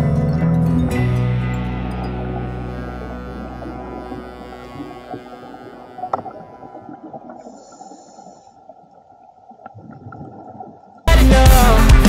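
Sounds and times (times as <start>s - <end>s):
muffled underwater water noise: 1.6s - 11.1s.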